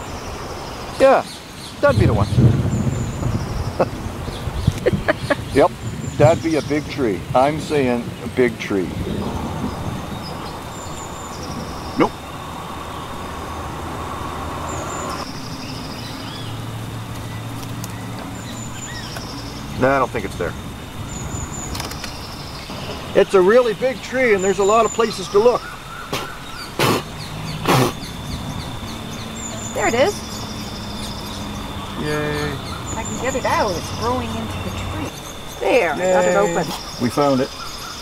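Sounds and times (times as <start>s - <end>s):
faint high chirping: 0.0s - 38.0s
outdoor background noise: 0.0s - 38.0s.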